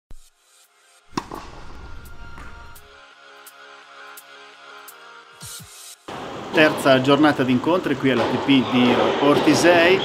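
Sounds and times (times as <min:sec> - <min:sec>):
loud impact: 0:01.1 - 0:02.9.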